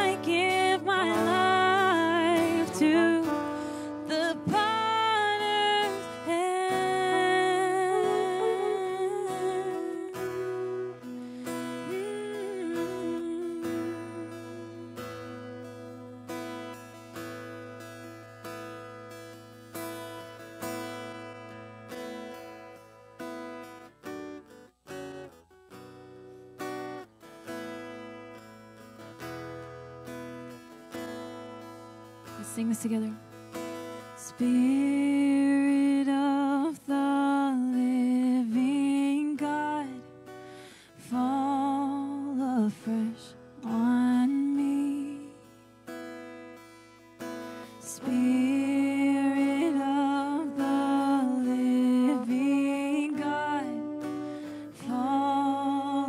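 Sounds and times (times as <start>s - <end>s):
strummed acoustic guitar: 0.0s - 56.0s.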